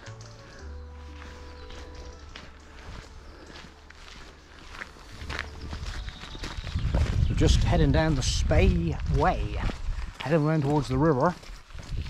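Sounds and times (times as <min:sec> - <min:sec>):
faint background music: 0:00.0 - 0:09.7
footsteps on a woodland path: 0:00.0 - 0:12.0.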